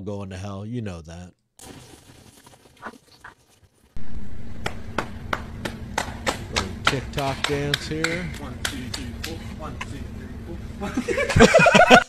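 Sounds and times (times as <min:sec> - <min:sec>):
steady low drone: 0:04.0 - 0:12.0
rhythmic hand claps and taps: 0:04.6 - 0:09.5.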